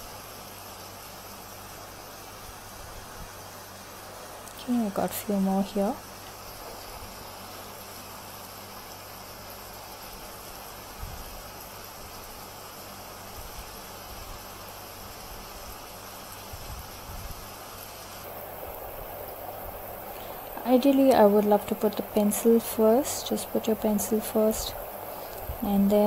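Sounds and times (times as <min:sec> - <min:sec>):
steady background hiss: 0:00.0 - 0:26.0.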